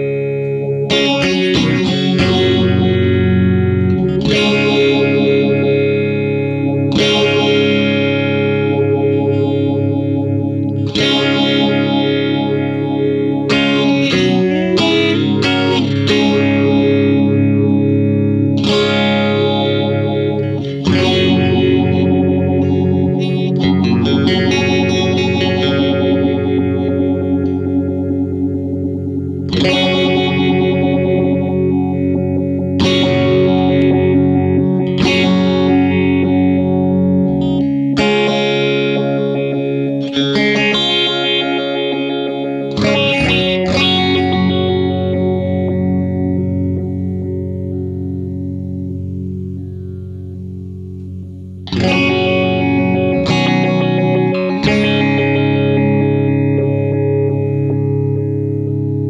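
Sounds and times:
electric guitar chords ringing: 0.0s - 59.0s.

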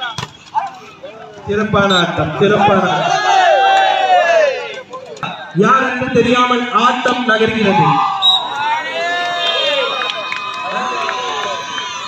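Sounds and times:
people shouting: 2.5s - 4.7s, 7.6s - 12.0s.

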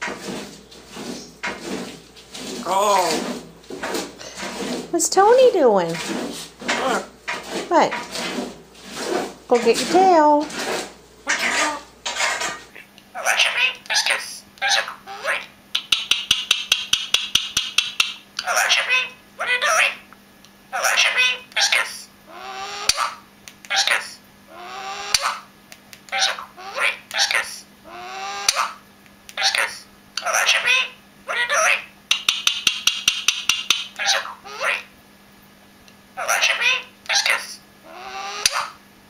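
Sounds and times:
parakeet chatter: 11.2s - 11.9s, 12.6s - 20.1s, 20.7s - 34.9s, 36.2s - 38.8s
parakeet sharp clicks: 15.7s - 18.5s, 32.1s - 34.2s.

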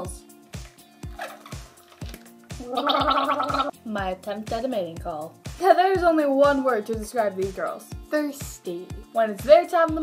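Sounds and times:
background music with steady beat: 0.0s - 10.0s
woman gargling water: 2.6s - 3.7s.

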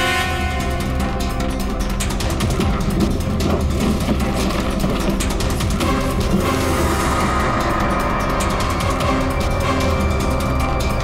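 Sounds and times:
low drone: 0.0s - 11.0s
fast ticking percussion: 0.6s - 11.0s.

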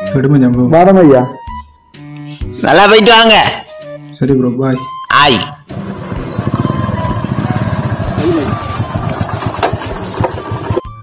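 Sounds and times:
motorcycle engine running: 5.7s - 11.0s.

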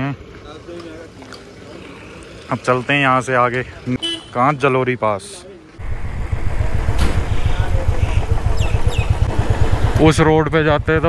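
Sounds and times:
motorcycle engine running: 5.8s - 11.0s.

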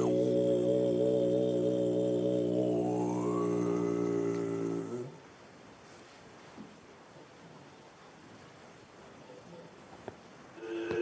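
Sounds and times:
deep chanting voice: 0.0s - 5.2s, 10.6s - 11.0s.

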